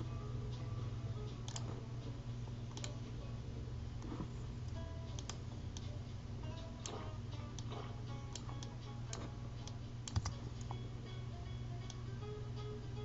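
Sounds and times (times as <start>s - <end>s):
low hum: 0.0s - 13.0s
keyboard and mouse clicks: 1.4s - 1.8s, 2.7s - 3.0s, 5.1s - 5.9s, 7.6s - 10.7s.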